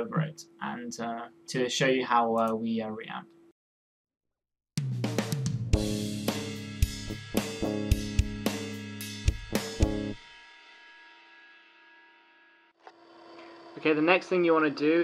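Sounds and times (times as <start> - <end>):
drum loop: 4.8 - 10.2.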